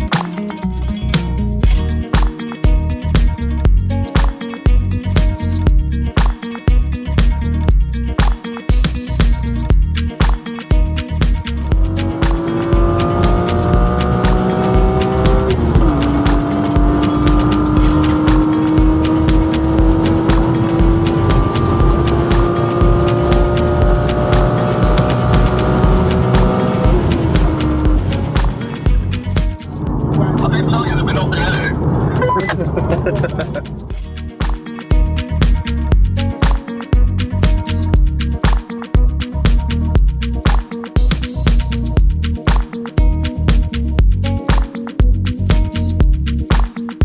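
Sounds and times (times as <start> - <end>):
music track: 0.0 - 47.0
car engine under full throttle: 11.7 - 33.9
rough noisy rush: 11.8 - 34.0.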